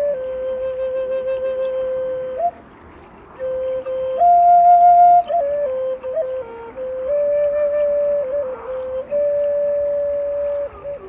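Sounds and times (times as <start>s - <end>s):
flute playing slow melody: 0.0s - 11.0s.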